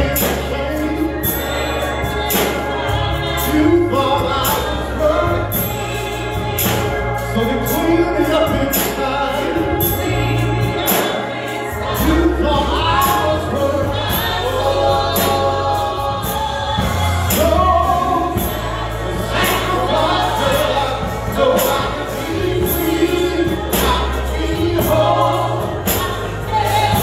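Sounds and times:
gospel instrumental backing: 0.0s - 27.0s
man singing into a microphone: 7.4s - 9.8s.

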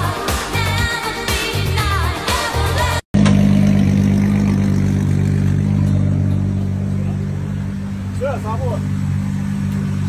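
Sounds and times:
car engine idling: 3.2s - 10.0s.

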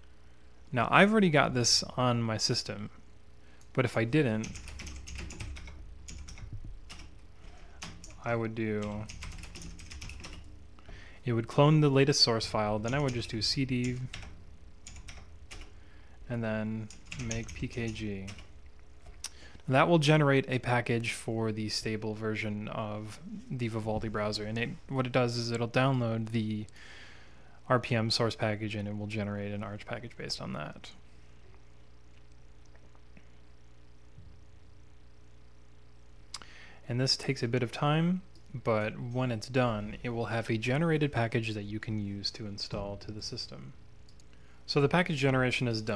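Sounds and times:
low hum: 0.0s - 36.3s
faint electrical whine: 0.0s - 45.9s
computer keyboard typing: 4.4s - 10.6s, 12.6s - 15.8s, 16.8s - 18.5s.

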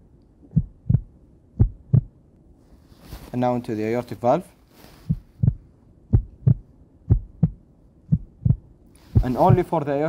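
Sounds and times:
heartbeat through stethoscope: 0.4s - 2.2s, 5.0s - 9.7s.

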